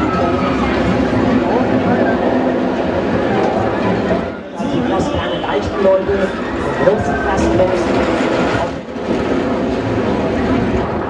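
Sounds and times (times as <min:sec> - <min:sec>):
crowd voices: 0:00.0 - 0:11.0
roller coaster rolling on track: 0:00.0 - 0:11.0.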